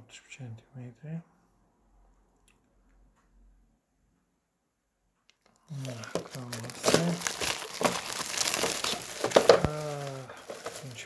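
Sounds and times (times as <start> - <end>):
plastic film crinkling: 5.4 - 11.0.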